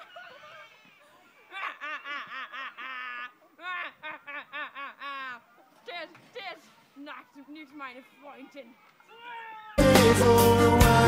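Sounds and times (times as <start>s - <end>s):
girl laughing hard: 0.0s - 5.5s.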